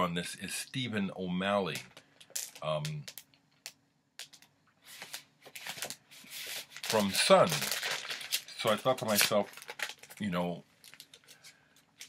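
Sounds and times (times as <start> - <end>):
cardboard sleeve rustling: 4.8 - 11.6.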